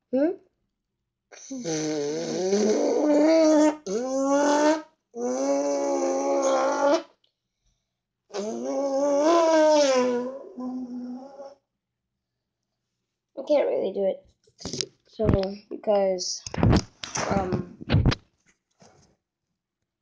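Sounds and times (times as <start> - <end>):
boy imitating motorcycle engine: 1.4 - 7.0, 8.4 - 11.6.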